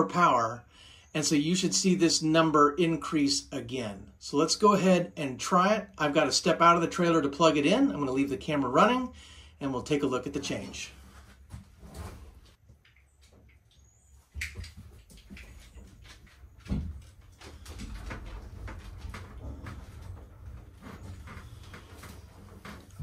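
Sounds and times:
knocks and bumps: 0:14.4 - 0:23.0.

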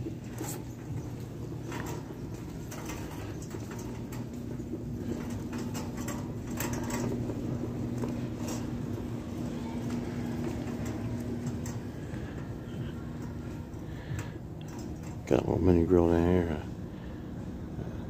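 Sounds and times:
shopping cart wheels rattling: 0:00.0 - 0:16.7
low hum: 0:00.0 - 0:18.0.

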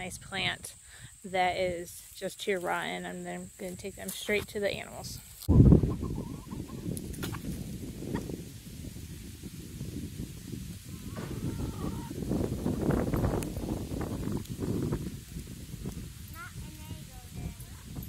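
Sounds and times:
chickens clucking: 0:05.4 - 0:08.4
low rumble on microphone: 0:05.5 - 0:18.0.

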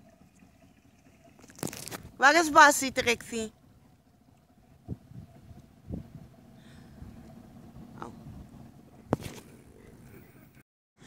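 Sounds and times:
faint outdoor background: 0:00.0 - 0:10.6.

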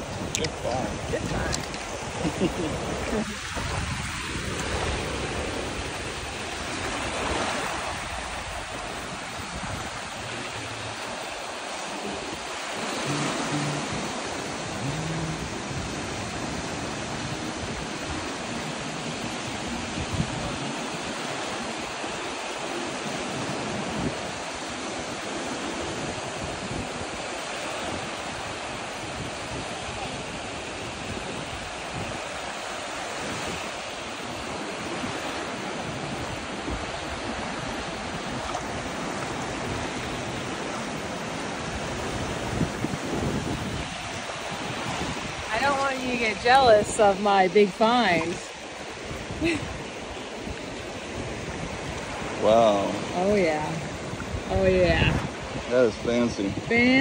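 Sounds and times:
small waves breaking on beach: 0:00.0 - 0:57.0.

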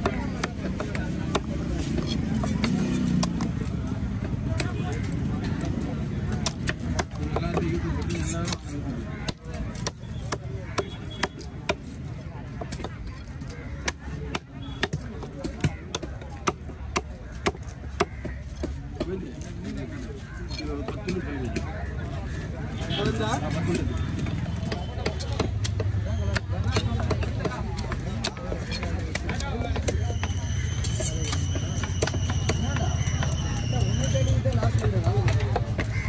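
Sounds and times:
knife chopping fish on wood: 0:00.0 - 0:04.8, 0:05.5 - 0:19.2, 0:23.8 - 0:33.4, 0:34.9 - 0:36.0.

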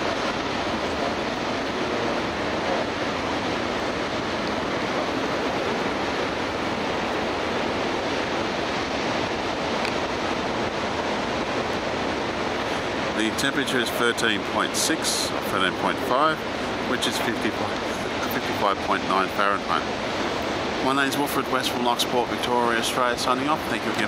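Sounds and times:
ocean surf breaking: 0:00.0 - 0:24.0.

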